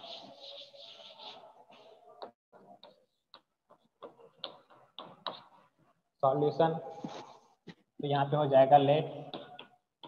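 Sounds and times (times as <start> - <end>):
duster rubbing on chalkboard: 0.0 - 1.5
chalk tapping and scratching: 0.0 - 5.9.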